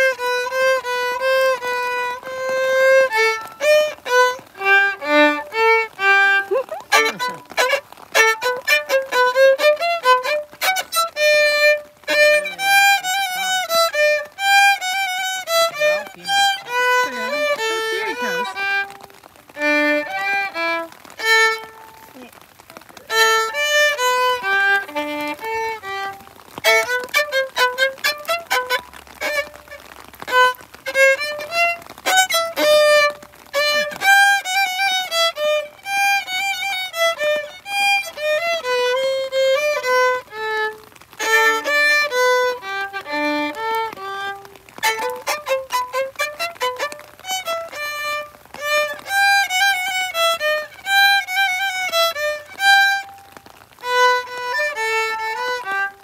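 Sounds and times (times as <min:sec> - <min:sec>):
solo violin melody: 0:00.0 - 0:56.0.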